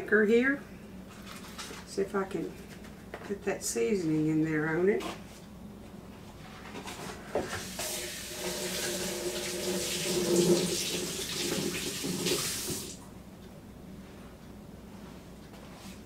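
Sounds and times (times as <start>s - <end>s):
faucet running into sink: 7.6s - 13.0s
hands being washed: 7.6s - 13.0s.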